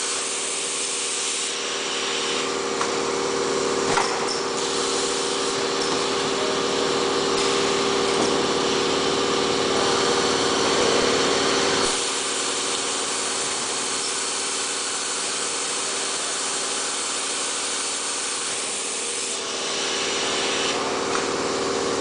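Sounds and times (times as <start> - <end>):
machine humming and hissing: 0.0 - 22.0.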